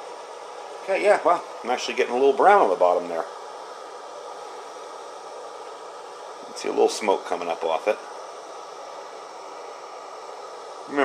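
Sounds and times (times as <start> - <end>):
gas stove hissing: 0.0 - 11.0.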